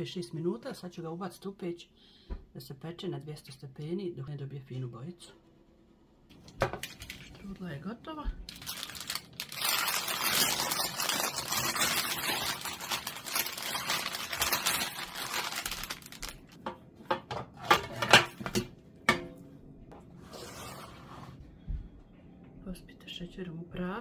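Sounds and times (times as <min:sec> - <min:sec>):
parchment paper rustling: 0:08.4 - 0:16.6.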